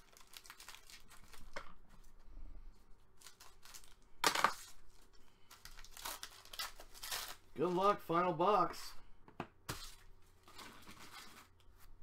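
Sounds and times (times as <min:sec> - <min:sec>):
foil wrapper crinkling and tearing: 0:00.0 - 0:01.8, 0:03.2 - 0:07.5.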